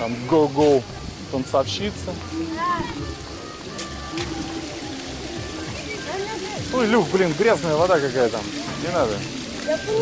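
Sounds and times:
background music: 0.0 - 10.0
fountain water splashing into basin: 0.0 - 10.0.

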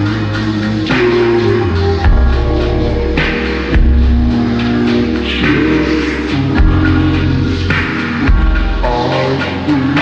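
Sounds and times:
vaporwave music: 0.0 - 10.0.

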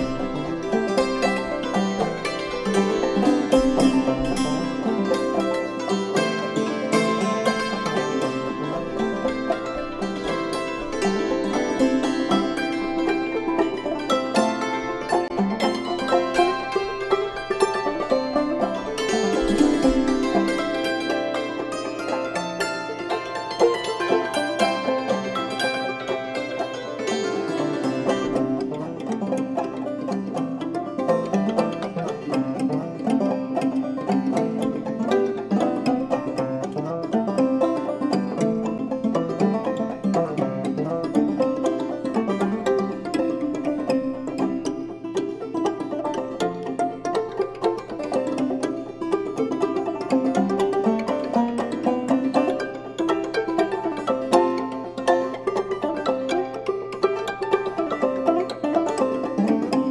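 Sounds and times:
clawhammer banjo: 0.0 - 59.9
hammered dulcimer: 0.0 - 59.9.

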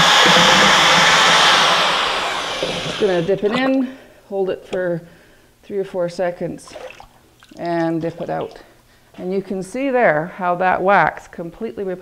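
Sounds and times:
electric drill stirring glaze: 0.0 - 3.9.

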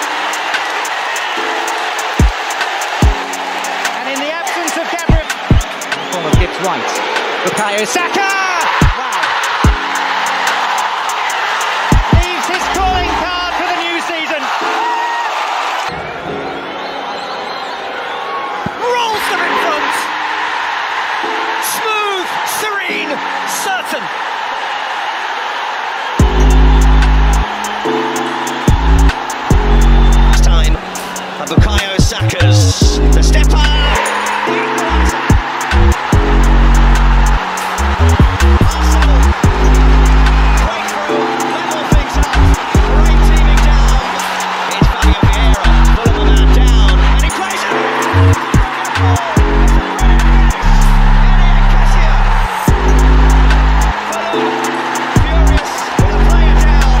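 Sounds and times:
stadium crowd noise: 0.0 - 57.0
bass-heavy music track: 11.9 - 13.6, 26.2 - 57.0.

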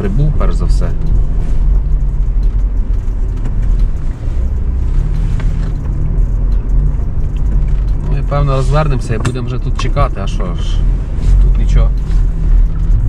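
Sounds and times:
car engine and tyres rumbling: 0.0 - 13.0.

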